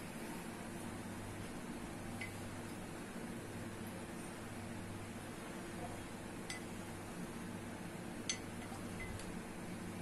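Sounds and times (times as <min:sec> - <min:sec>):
steady low room hum: 0:00.0 - 0:10.0.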